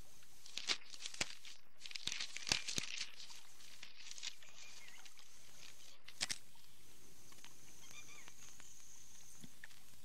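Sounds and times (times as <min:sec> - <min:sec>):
faint bird chirps: 0:04.2 - 0:10.0.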